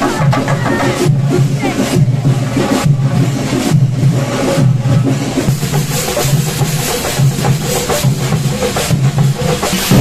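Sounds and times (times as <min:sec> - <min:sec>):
drum ensemble playing loudly: 0:00.0 - 0:10.0.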